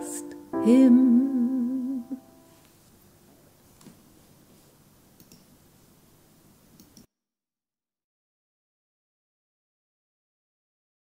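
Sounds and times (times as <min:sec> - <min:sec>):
soft clicks: 0:05.2 - 0:05.5, 0:06.8 - 0:07.1.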